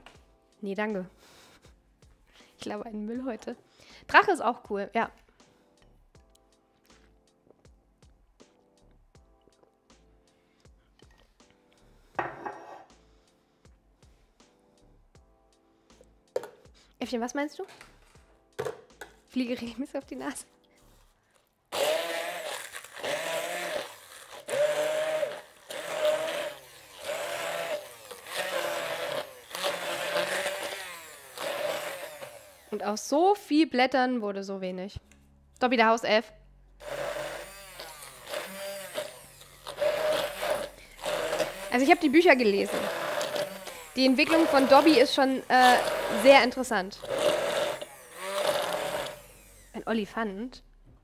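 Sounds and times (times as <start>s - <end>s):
stick blender motor whine: 21.8s - 33.0s, 36.8s - 50.0s.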